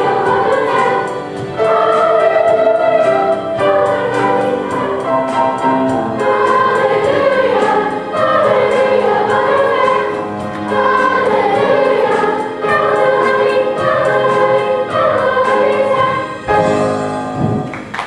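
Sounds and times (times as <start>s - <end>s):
children's choir singing: 0.0s - 17.6s
instrumental accompaniment: 0.0s - 18.0s.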